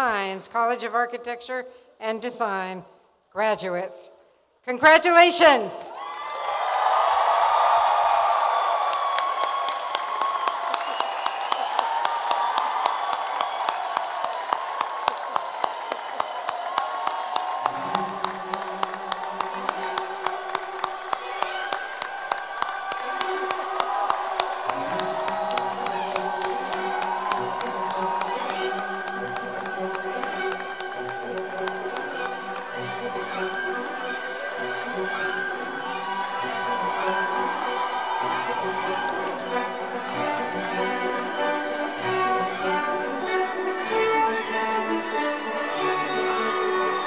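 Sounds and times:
crowd cheering and whooping: 5.9s - 40.6s, 45.8s - 47.0s
dense clapping: 7.0s - 34.0s
music with sustained notes: 17.7s - 47.0s.

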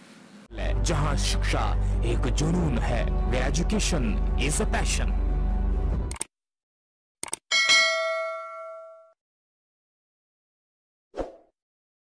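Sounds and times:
notification bell ding: 7.5s - 9.2s.

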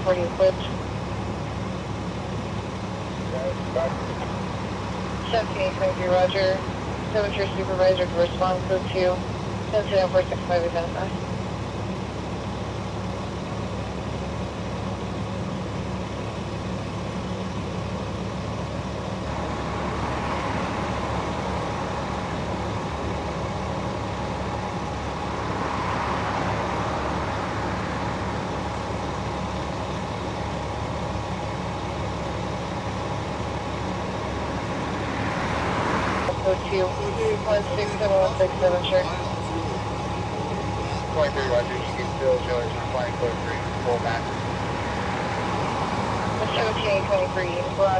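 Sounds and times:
diesel engine idling: 0.0s - 47.9s
broad rushing noise: 19.1s - 47.9s.

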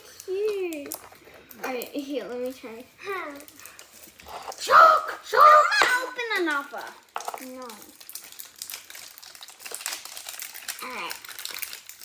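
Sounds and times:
child speaking loudly: 4.6s - 7.9s.

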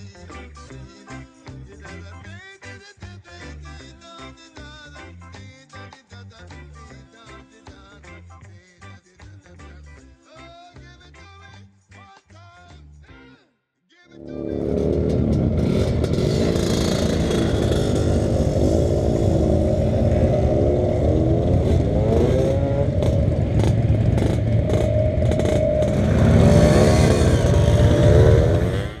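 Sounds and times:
two-stroke scooter engines revving: 14.3s - 29.0s.

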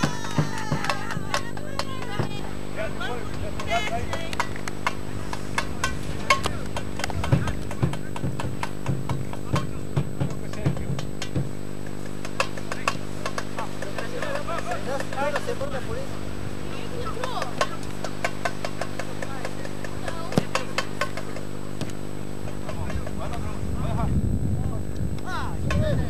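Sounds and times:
scattered voices and calls: 0.0s - 26.0s
steady low hum: 0.0s - 26.0s
sharp clicks and knocks: 3.3s - 15.8s, 17.2s - 23.3s.

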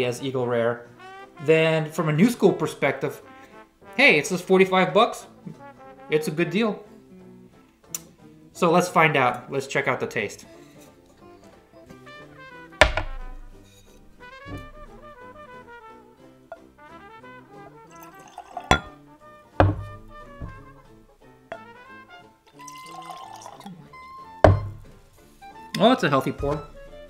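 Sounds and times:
background music: 0.0s - 27.0s
glass knocking on tabletop: 12.8s - 13.8s, 14.5s - 15.0s, 18.5s - 19.0s, 19.6s - 21.7s, 24.5s - 25.0s
bottle opening: 12.8s - 15.2s, 17.9s - 19.0s, 19.6s - 21.7s, 22.5s - 23.8s, 24.4s - 25.1s
whiskey pouring into glass: 17.8s - 19.0s, 19.6s - 21.7s, 22.5s - 25.0s.

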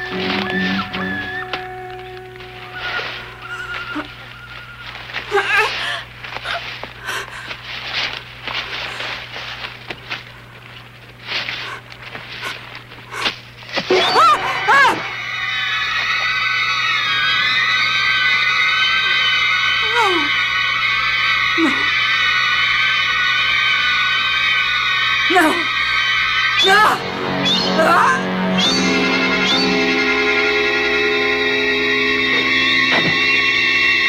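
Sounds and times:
low held notes: 0.0s - 5.1s, 23.2s - 34.0s
high wavering tone: 0.0s - 5.2s, 21.6s - 34.0s
woman crying out: 5.3s - 6.0s, 13.9s - 15.0s, 19.8s - 20.4s, 21.6s - 21.9s.

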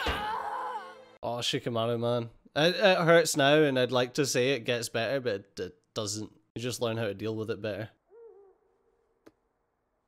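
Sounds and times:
soft hooting call: 8.0s - 9.0s.

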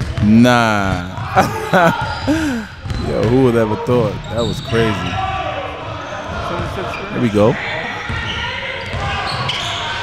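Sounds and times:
basketball bouncing on court: 0.0s - 1.4s, 2.0s - 3.5s, 8.1s - 9.8s.

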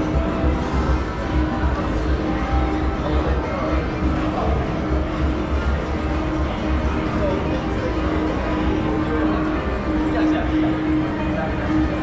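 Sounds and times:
murmur of voices: 0.0s - 12.0s
steady music: 0.0s - 12.0s.

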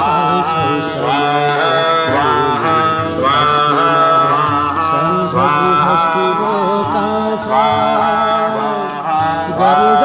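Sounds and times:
person singing long gliding notes: 0.0s - 10.0s
steady musical accompaniment: 0.0s - 10.0s.

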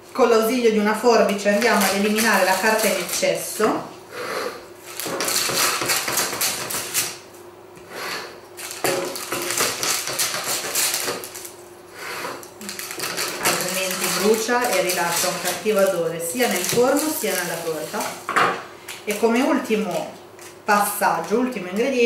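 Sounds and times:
paper crinkling: 1.4s - 3.3s, 12.4s - 18.2s
scissors snipping paper: 1.4s - 3.4s, 8.6s - 11.5s, 12.6s - 18.1s.

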